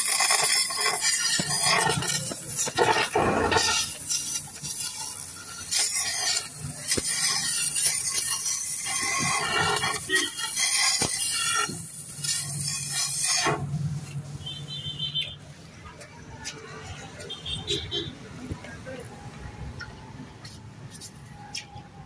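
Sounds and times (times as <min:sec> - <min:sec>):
gas cutting torch hissing: 0:00.0 - 0:15.1.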